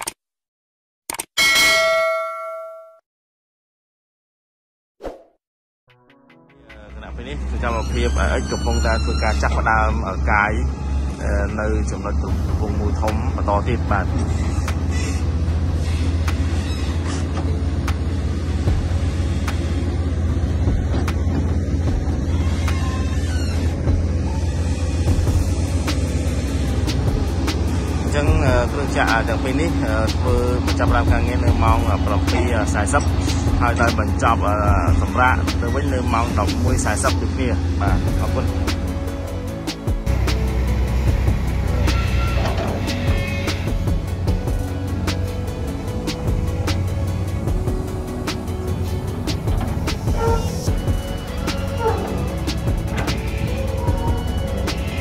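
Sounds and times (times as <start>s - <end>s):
notification bell ding: 1.4s - 3.0s
excavator diesel engine rumbling: 6.8s - 55.0s.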